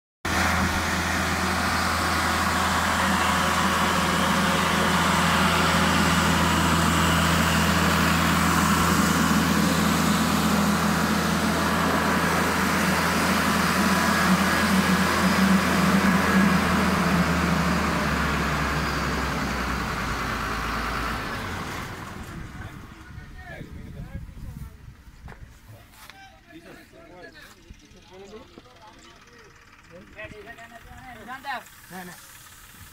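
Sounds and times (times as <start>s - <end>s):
diesel engine running: 0.2s - 32.9s.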